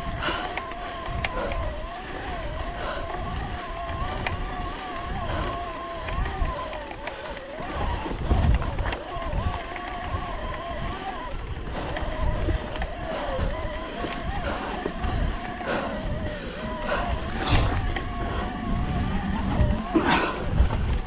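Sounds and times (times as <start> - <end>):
bike jolt: 0.0 - 21.0
electric bike motor whining: 0.0 - 21.0
tyres on stony track: 0.0 - 21.0
wind buffeting: 0.0 - 21.0.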